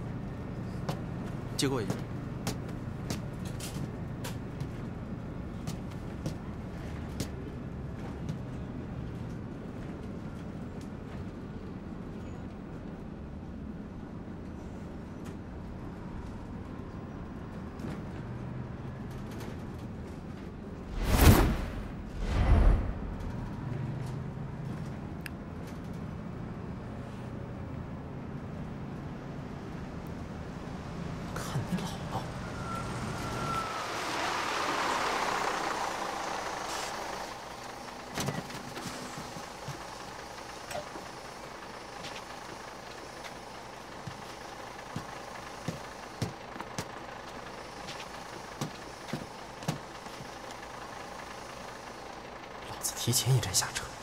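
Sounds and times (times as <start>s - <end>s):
bus engine drone: 0.0s - 54.0s.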